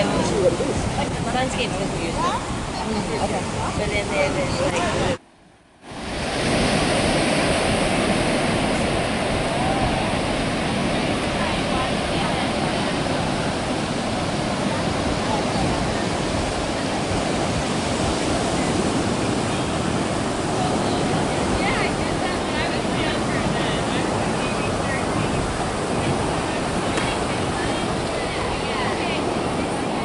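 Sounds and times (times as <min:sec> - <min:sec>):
ocean surf on sandy beach: 0:00.0 - 0:30.0.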